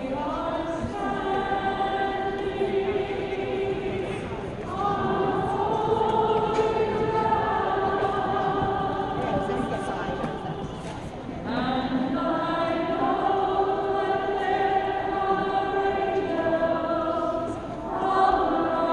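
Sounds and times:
women singing together: 0:00.0 - 0:18.9.

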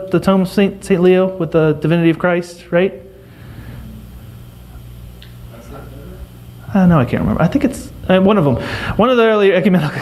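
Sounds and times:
low room hum and hiss: 0:00.0 - 0:10.0.

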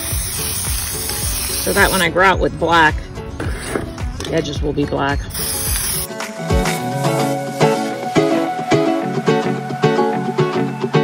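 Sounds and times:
aerosol spray can hiss: 0:00.0 - 0:02.1, 0:05.3 - 0:07.9
background music: 0:00.0 - 0:11.0.

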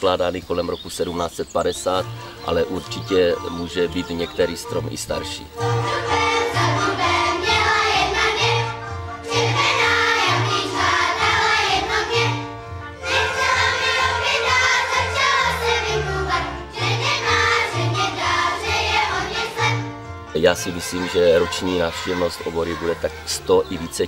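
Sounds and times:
string band with pulsing bass: 0:01.6 - 0:24.0
children's choir singing: 0:01.9 - 0:24.0.

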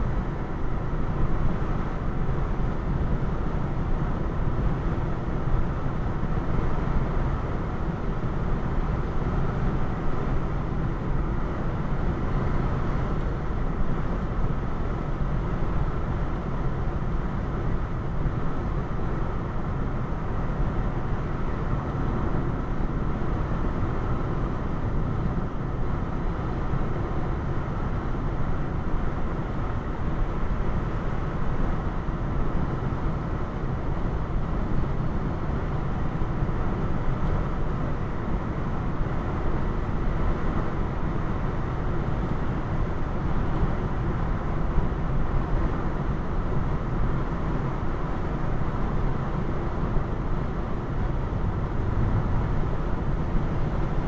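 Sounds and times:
car road noise: 0:48.8 - 0:54.0.

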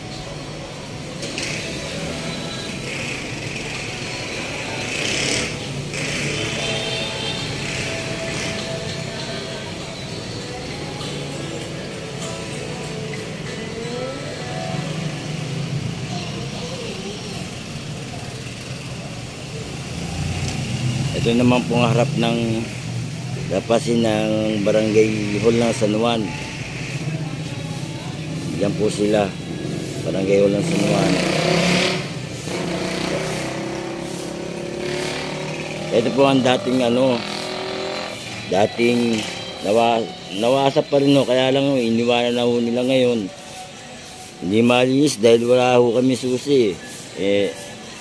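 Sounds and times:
background music: 0:00.0 - 0:18.0, 0:19.0 - 0:48.0
faint voices: 0:00.0 - 0:48.0
street traffic: 0:00.0 - 0:48.0
vehicle engine running nearby: 0:00.0 - 0:48.0.

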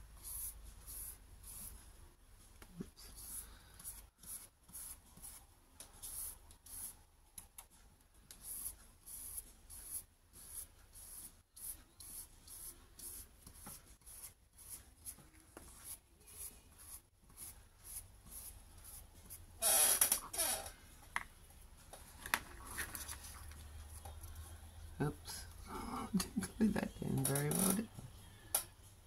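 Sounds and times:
brush strokes on paper: 0:00.1 - 0:07.1, 0:07.7 - 0:19.5.

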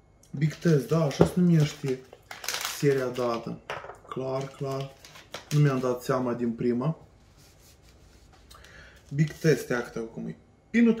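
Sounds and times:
wrapper rustling: 0:00.4 - 0:03.6, 0:04.2 - 0:06.2.

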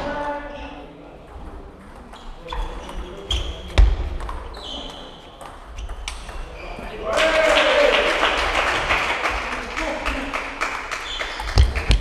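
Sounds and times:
voices in a large hall: 0:00.0 - 0:12.0
loud shout: 0:07.0 - 0:08.2.

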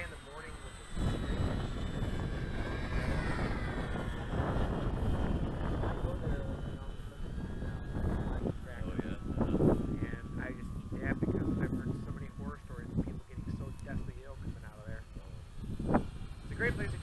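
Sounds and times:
model plane propeller whine: 0:00.0 - 0:17.0
wind rumble on microphone: 0:00.0 - 0:17.0.

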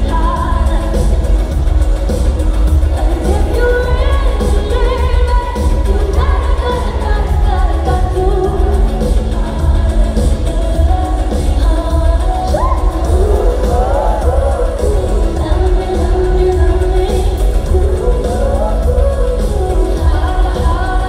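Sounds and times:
amplified backing track with bass: 0:00.0 - 0:21.0
woman singing: 0:00.0 - 0:21.0.

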